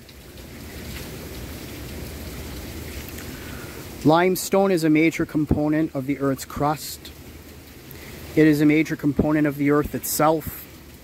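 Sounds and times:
flowing water rushing: 0.0 - 11.0.

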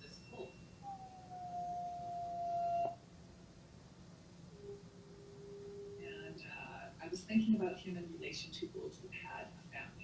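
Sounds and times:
wolf howling: 0.8 - 3.0.

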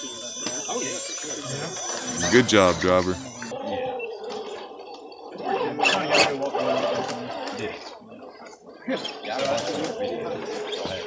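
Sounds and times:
toy car electric motor whining: 0.0 - 11.0.

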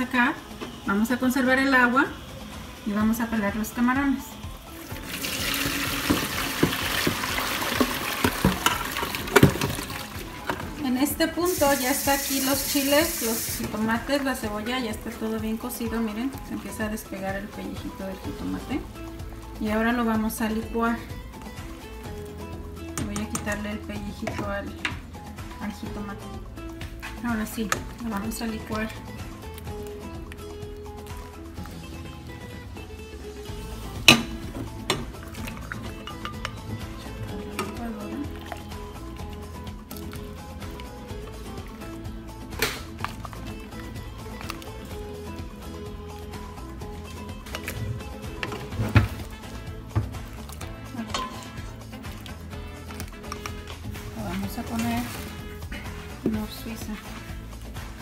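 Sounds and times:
background music with steady beat: 0.0 - 58.0
spoon clinking against metal pot: 23.0 - 25.0, 34.1 - 36.8, 51.0 - 51.7.

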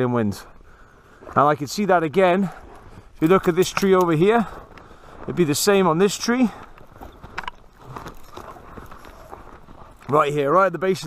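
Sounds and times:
footsteps crunching in snow: 0.0 - 11.0.

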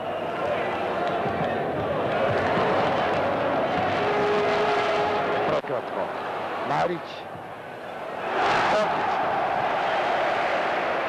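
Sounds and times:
crowd din of voices: 0.0 - 11.0.

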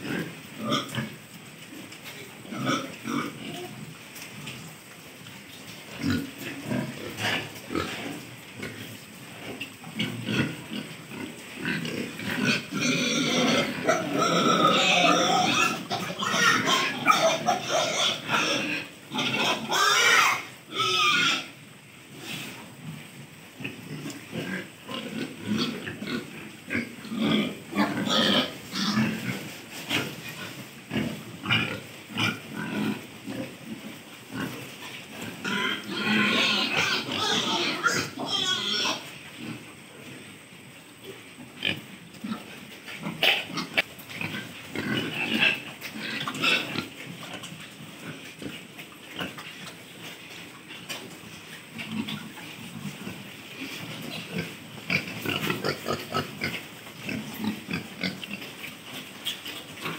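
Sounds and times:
pigs grunting: 0.0 - 1.2, 2.0 - 3.8, 5.9 - 21.5, 23.6 - 39.8, 41.4 - 49.8, 51.7 - 59.9
pigs squealing: 9.9 - 21.6, 23.9 - 33.5, 35.2 - 39.6, 41.6 - 47.4.

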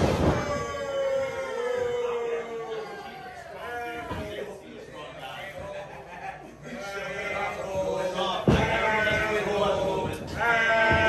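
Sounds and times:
heavy thumps on wrestling ring: 8.4 - 11.0.

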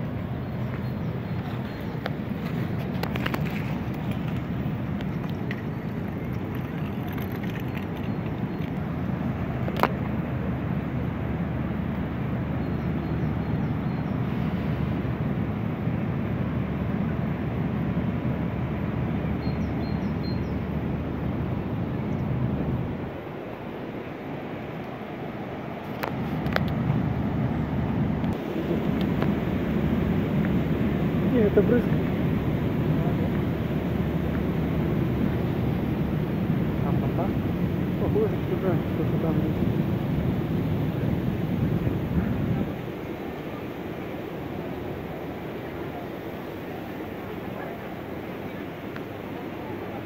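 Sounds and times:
open-air ambience: 0.0 - 50.0
wind rumble on microphone: 0.0 - 50.0.

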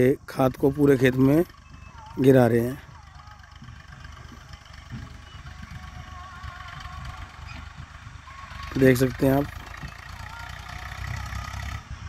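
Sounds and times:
tractor diesel engine rumbling: 0.0 - 12.0.

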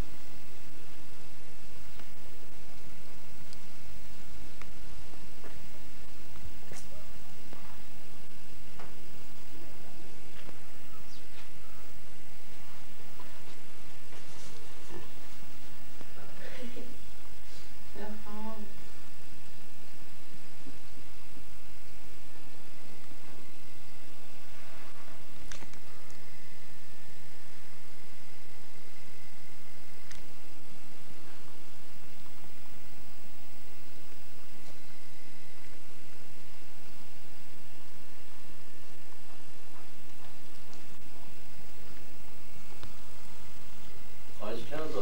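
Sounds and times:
low electrical hum: 0.0 - 45.0
tape hiss: 0.0 - 45.0.

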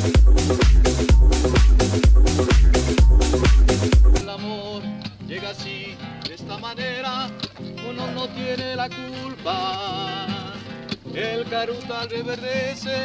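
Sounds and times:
person singing: 0.0 - 13.0
plucked acoustic guitar chords: 0.0 - 13.0.

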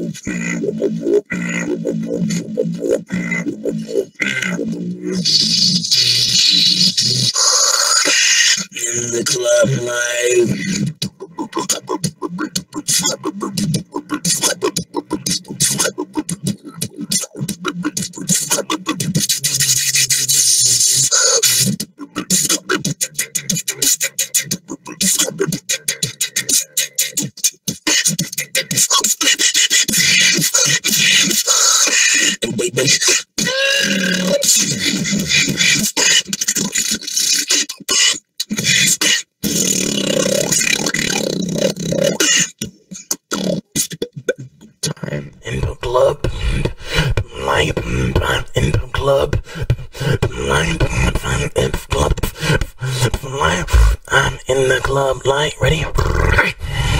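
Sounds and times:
person beatboxing: 0.0 - 56.9
pitched vocal sweep: 0.0 - 56.9.

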